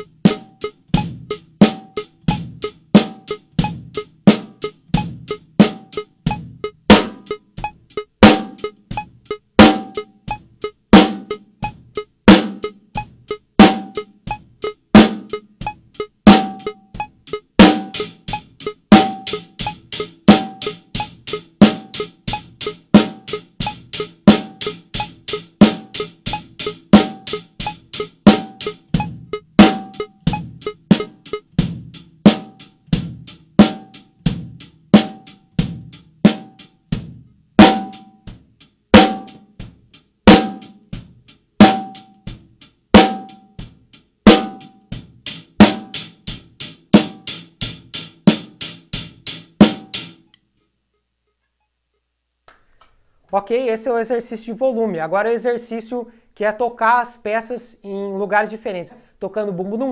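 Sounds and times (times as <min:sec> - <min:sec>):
metronome beeping: 0:00.0 - 0:32.8
acoustic drum kit groove: 0:00.0 - 0:50.4, 0:52.5 - 0:59.9.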